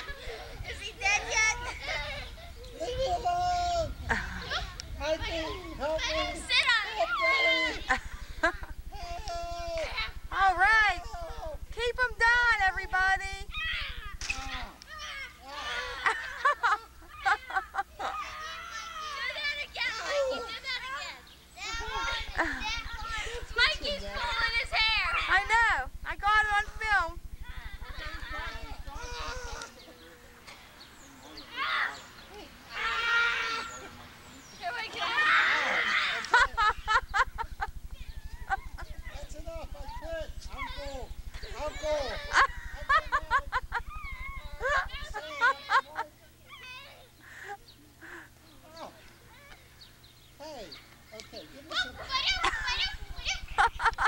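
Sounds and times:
children calling out: 0.0 - 11.6, 13.4 - 25.8, 27.4 - 30.2, 31.0 - 47.2, 51.6 - 54.0
low hum: 0.0 - 34.6, 35.6 - 54.0
steady low buzz: 0.0 - 54.0.

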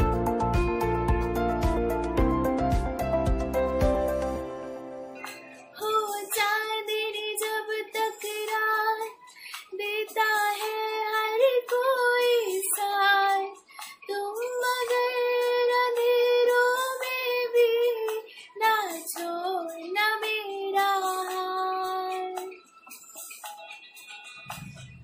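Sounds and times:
woman singing unaccompanied: 5.8 - 22.6.

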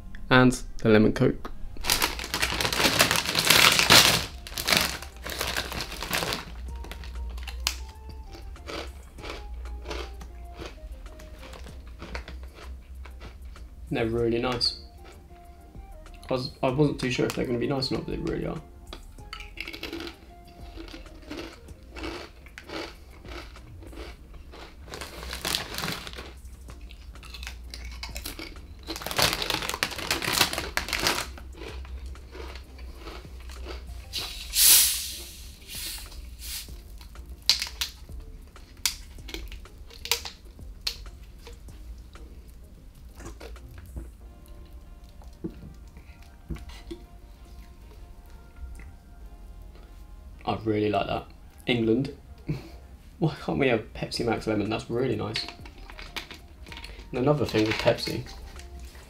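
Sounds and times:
crisp packet crinkling: 1.8 - 10.8, 11.4 - 13.2, 19.5 - 34.4, 35.8 - 38.0, 38.7 - 41.6, 55.2 - 59.0
crisps crunching: 1.8 - 13.5, 19.3 - 35.0, 35.8 - 41.8, 43.0 - 47.0, 54.4 - 59.0
short sharp hiss: 34.1 - 36.7.

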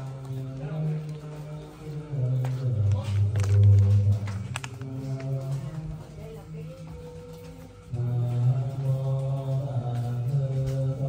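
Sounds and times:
low monotone chanting: 0.0 - 11.0.

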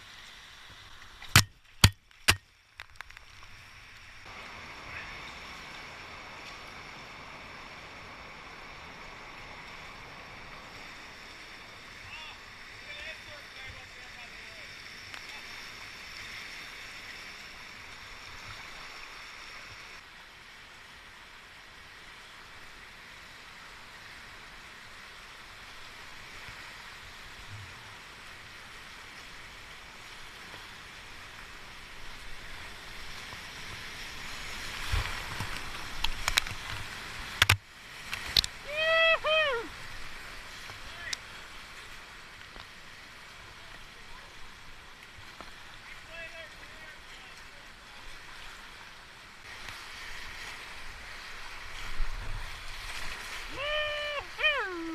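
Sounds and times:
kayak splashing and knocking: 0.8 - 3.3, 34.6 - 38.6
whitewater river rushing: 25.4 - 45.0, 49.5 - 54.9
person whooping: 38.6 - 39.7, 53.5 - 54.9.

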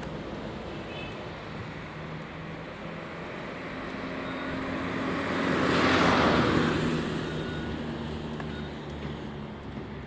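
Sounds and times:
vehicle driving past: 2.9 - 9.5.

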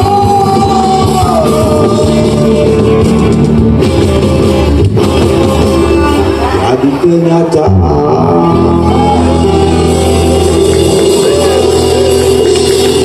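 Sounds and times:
live acoustic rock band: 0.0 - 7.0, 7.7 - 13.0.

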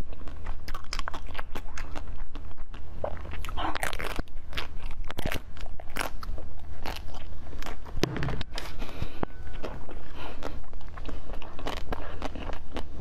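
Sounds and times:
ice crunching between teeth: 0.0 - 13.0.

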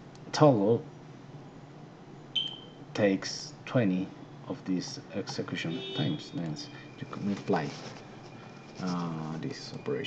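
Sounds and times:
high-pitched beep: 2.4 - 2.8.

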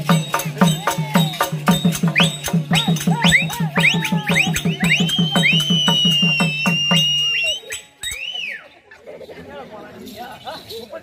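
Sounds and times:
drum beaten evenly: 0.0 - 8.2
high piercing wind instrument: 1.2 - 8.7.

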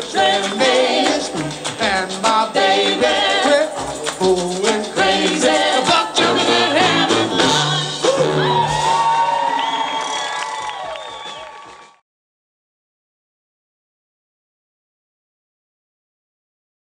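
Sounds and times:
trombone: 0.0 - 8.8
person singing: 0.0 - 9.2
audience whooping and cheering: 7.8 - 12.0.

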